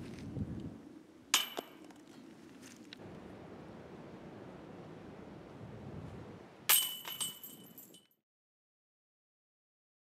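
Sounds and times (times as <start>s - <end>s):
metallic crash of chains: 6.7s - 8.1s
chain clink: 6.7s - 8.2s.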